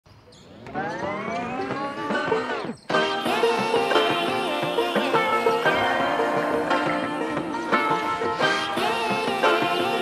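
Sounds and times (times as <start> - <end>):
synthesized rising tone: 0.5 - 3.4.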